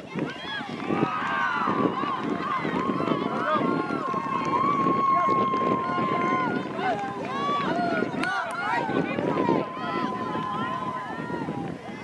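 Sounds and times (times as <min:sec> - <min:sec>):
many voices shouting: 0:00.2 - 0:12.0.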